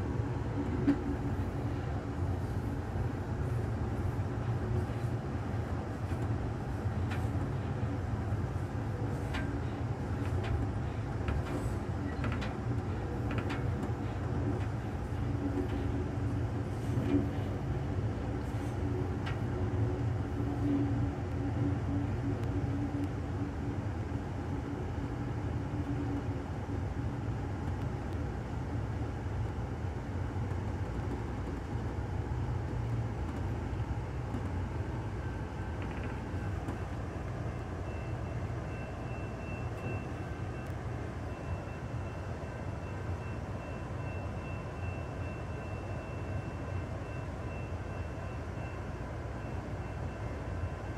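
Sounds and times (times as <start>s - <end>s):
train interior rumble: 0.0s - 50.9s
faint high whine: 31.8s - 50.9s.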